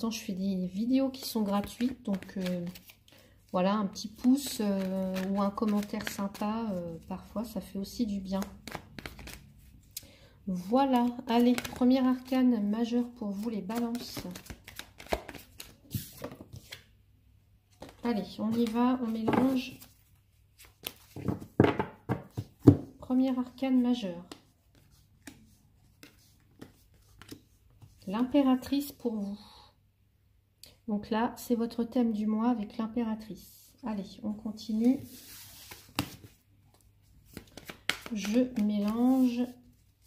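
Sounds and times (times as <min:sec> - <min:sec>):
cards clicking and rustling: 0:01.5 - 0:03.0, 0:04.2 - 0:06.4, 0:13.7 - 0:16.8, 0:24.3 - 0:27.5, 0:37.3 - 0:39.2.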